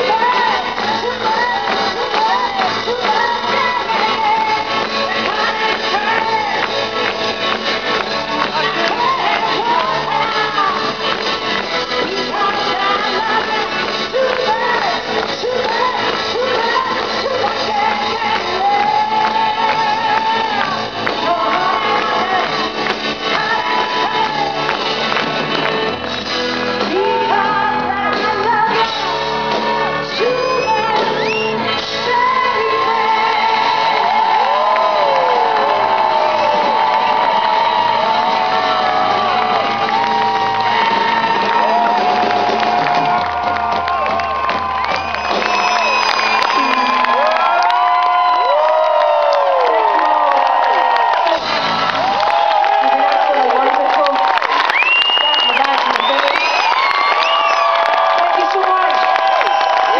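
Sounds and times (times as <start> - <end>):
woman singing: 0.0 - 6.8, 8.4 - 11.2, 11.8 - 24.7, 26.8 - 36.3
crowd shouting and whooping: 0.0 - 26.1, 26.8 - 59.9
live pop-rock band: 0.0 - 59.9.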